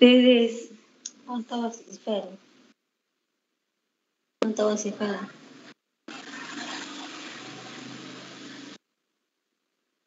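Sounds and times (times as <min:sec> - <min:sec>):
steady hiss: 0:05.4 - 0:08.8.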